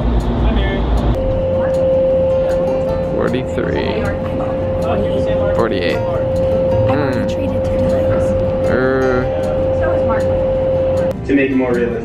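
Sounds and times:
wind tunnel roar: 0.0 - 11.2
constant mid-pitched hum: 0.0 - 12.0
woman talking: 6.9 - 8.5, 9.8 - 10.4.

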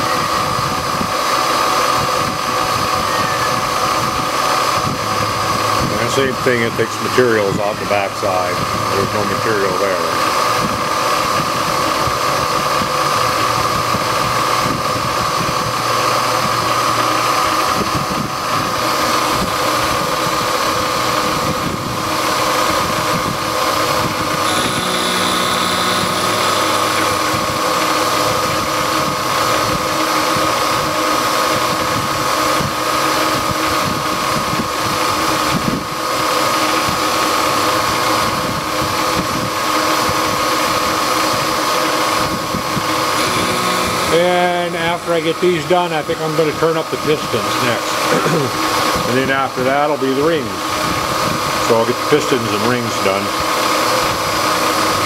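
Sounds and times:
constant machine noise: 0.0 - 55.0
milling spindle high whine: 0.0 - 55.0.

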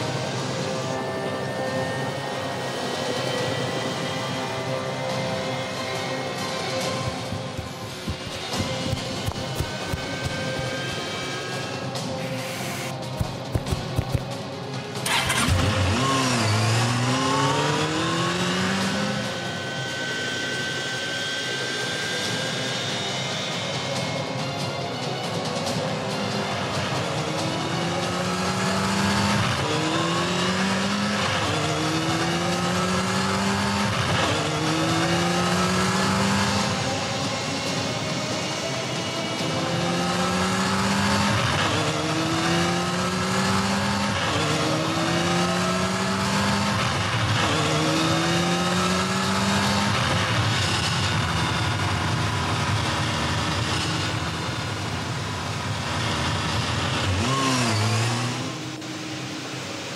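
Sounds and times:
motorcycle engine at full throttle: 0.0 - 59.9
steady rushing noise: 0.0 - 59.9.

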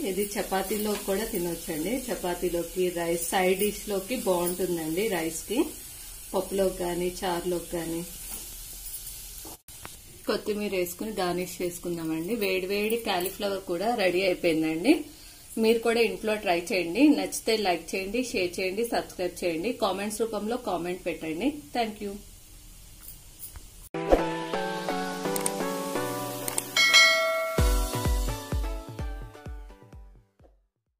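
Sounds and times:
faint hiss: 0.0 - 23.9
background music: 24.0 - 30.4
bright bell ding: 26.8 - 28.0
deep kick drum beat: 27.6 - 30.2.

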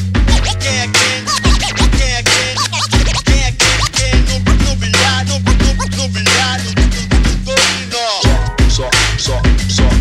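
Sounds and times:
hip-hop beat with bass and drums: 0.0 - 10.0
turntable scratching: 0.2 - 8.0.

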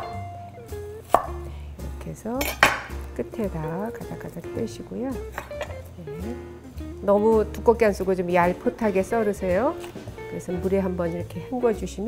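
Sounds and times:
background music: 0.0 - 12.0
knife slicing onion on board: 1.1 - 1.4.

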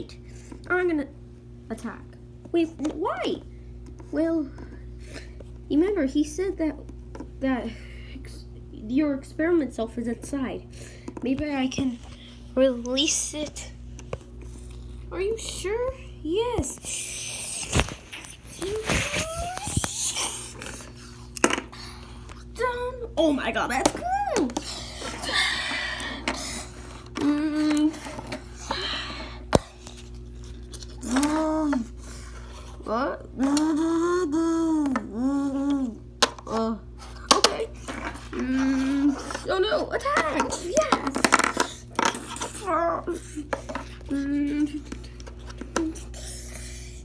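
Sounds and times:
child making vocal sound effects: 18.5 - 20.7, 27.2 - 28.0, 31.0 - 32.0, 32.9 - 36.8, 42.5 - 43.5.

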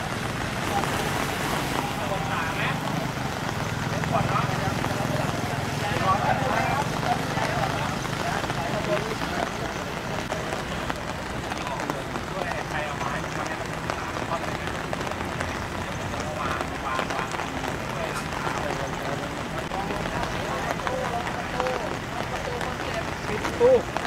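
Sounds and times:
distant people talking: 0.0 - 24.0
outdoor noise: 0.0 - 24.0.

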